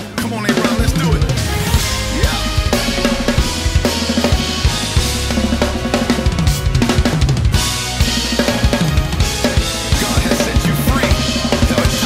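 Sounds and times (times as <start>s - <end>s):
backing track with bass line: 0.0s - 12.0s
drum kit fills: 0.0s - 12.0s
cymbals: 1.0s - 12.0s.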